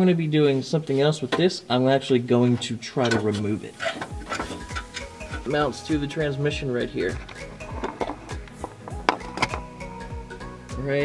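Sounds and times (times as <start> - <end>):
background music with a beat: 3.9 - 11.0.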